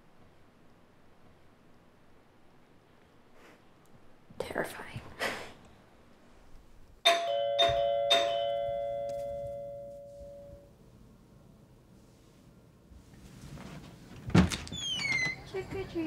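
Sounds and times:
doorbell chime: 7.0s - 10.7s.

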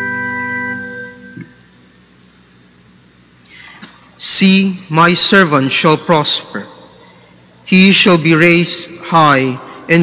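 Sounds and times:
organ chord: 0.0s - 3.3s.

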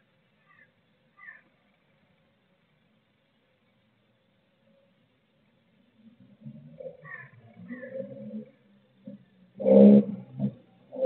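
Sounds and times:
faint background hiss: 0.0s - 11.0s
blue tit calling softly: 0.4s - 1.5s, 7.0s - 8.1s.

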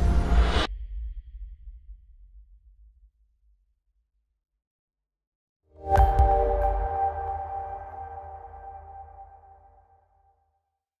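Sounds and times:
held electronic music chord: 5.8s - 10.0s.

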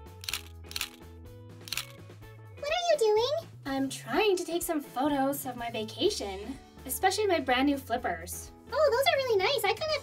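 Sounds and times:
light background music: 0.0s - 10.0s
camera shutter clicks: 0.2s - 1.0s, 1.7s - 2.0s.

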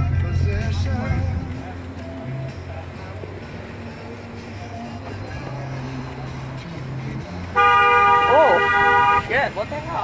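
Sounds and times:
car cabin hum and road noise: 0.0s - 10.0s
faint music: 0.0s - 10.0s.

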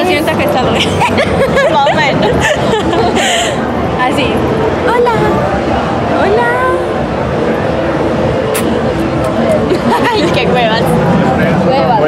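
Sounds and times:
faint babble of voices: 0.0s - 12.0s
loud street noise: 0.0s - 12.0s.

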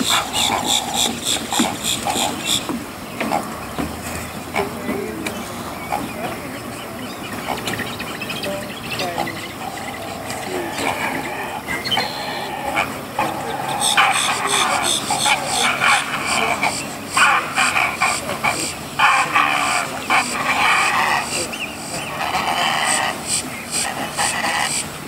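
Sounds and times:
birds chirping and squawking: 0.0s - 25.0s
rapid bird chattering: 0.0s - 25.0s.

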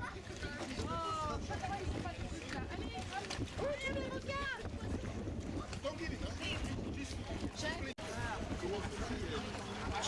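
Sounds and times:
people talking and exclaiming: 0.0s - 10.0s
wind rumble on microphone: 0.0s - 10.0s.

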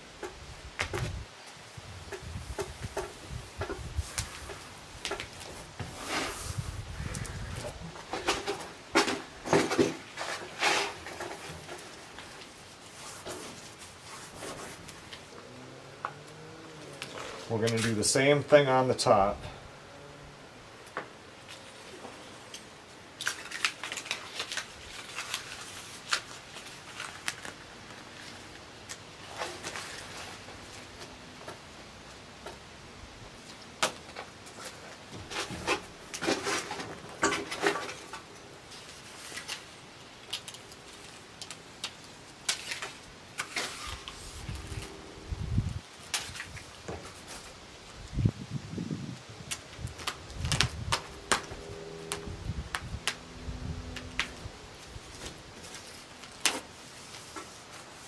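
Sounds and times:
tape rustling and crinkling: 0.1s - 18.8s, 20.8s - 32.7s, 33.3s - 58.0s.

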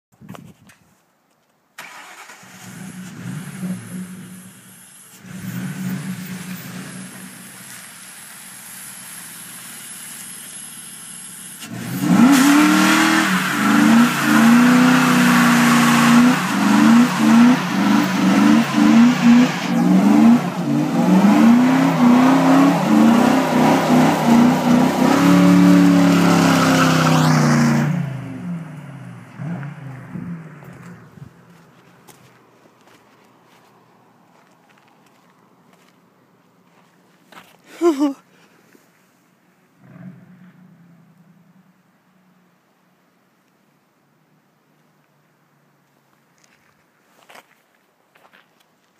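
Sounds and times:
car engine revving: 11.6s - 31.1s.

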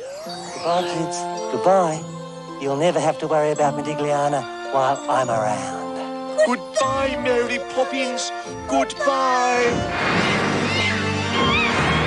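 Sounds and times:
spooky music with low notes: 0.0s - 12.0s
cat yowling: 10.6s - 12.0s.

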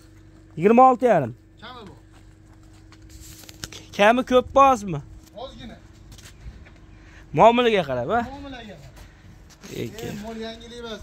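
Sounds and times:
cow hooves on concrete: 0.0s - 3.9s
faint steady hum: 0.0s - 11.0s.

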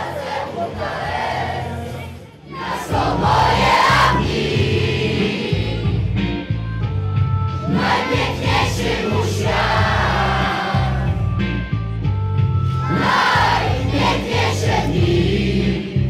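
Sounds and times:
crowd singing along: 0.0s - 6.2s, 7.5s - 11.4s, 12.7s - 16.0s.

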